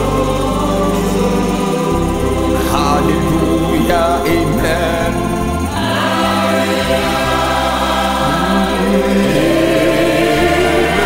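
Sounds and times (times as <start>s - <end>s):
gospel choir singing: 0.0s - 11.0s
steady bass line: 0.0s - 11.0s.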